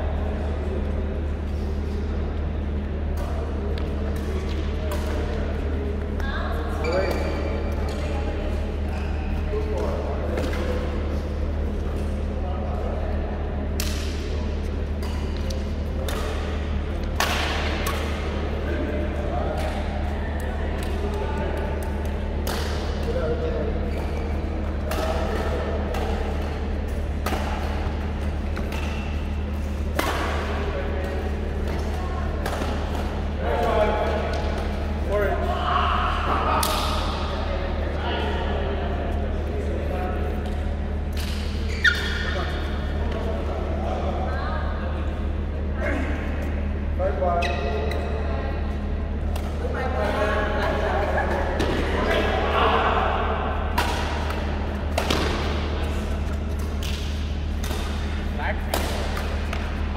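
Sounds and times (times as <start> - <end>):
rackets hitting shuttlecock: 13.7 - 18.5, 20.8 - 23.3, 24.7 - 34.8, 53.7 - 59.9.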